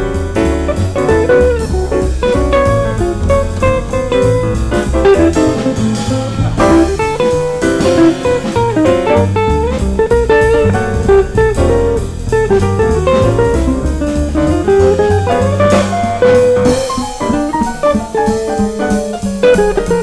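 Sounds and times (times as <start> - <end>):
drum kit with cymbals: 0.0 - 20.0
piano: 0.0 - 20.0
upright bass: 0.0 - 20.0.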